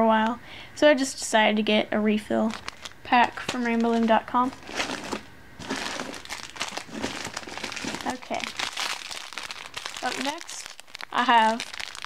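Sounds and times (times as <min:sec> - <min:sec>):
plastic packaging crinkling: 0:02.4 - 0:12.0.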